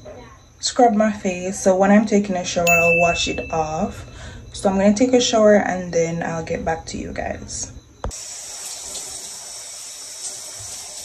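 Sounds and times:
shower water spray hissing: 0:08.1 - 0:11.0.

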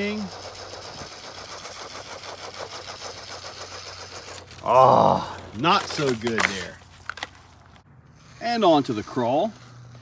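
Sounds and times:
rc truck motors whining: 0:00.0 - 0:07.3.

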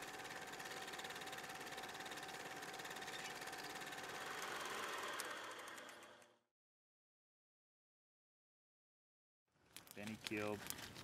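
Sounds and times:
film projector clattering: 0:00.0 - 0:06.2.

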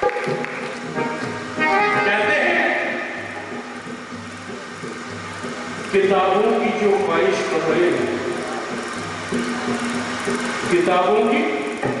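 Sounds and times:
harmonium holding low notes: 0:00.0 - 0:12.0.

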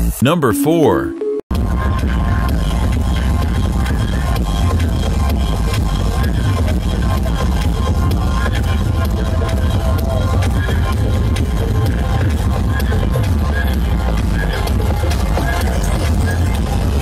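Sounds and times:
loud electronic dance music: 0:00.0 - 0:01.1.

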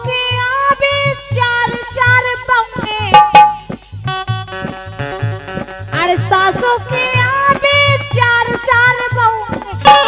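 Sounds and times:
low drum beat: 0:00.0 - 0:10.0.

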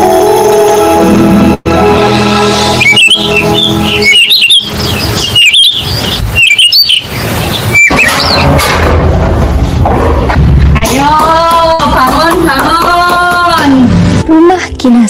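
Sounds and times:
background music: 0:00.0 - 0:05.4, 0:07.9 - 0:15.0
songbirds chirping: 0:02.8 - 0:08.5.

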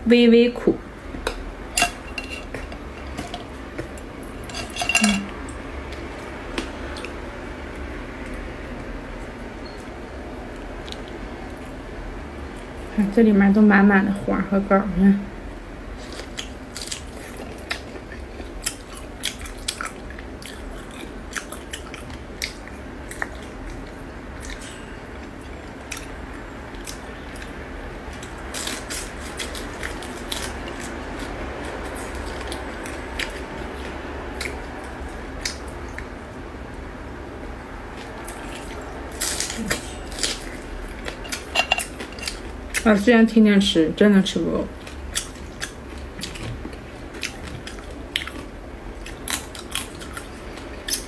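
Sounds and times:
biting and chewing: 0:44.8 - 0:51.0.

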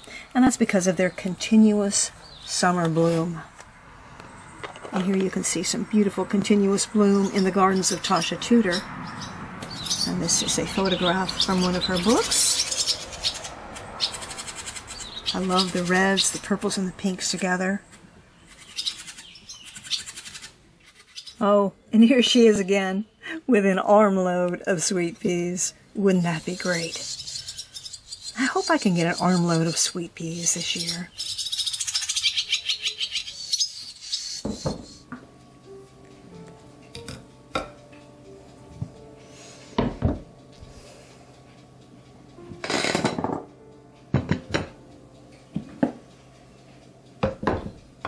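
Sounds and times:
small birds chirping: 0:00.0 - 0:23.2, 0:25.6 - 0:35.1.

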